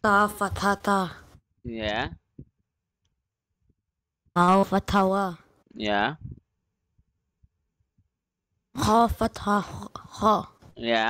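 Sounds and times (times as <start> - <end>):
man speaking: 1.7 - 2.2, 5.7 - 6.4, 10.8 - 11.0.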